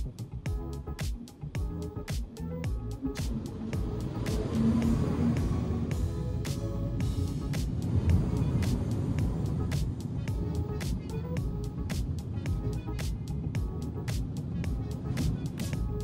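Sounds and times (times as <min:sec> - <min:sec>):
music with quick percussive beat: 0:00.0 - 0:16.0.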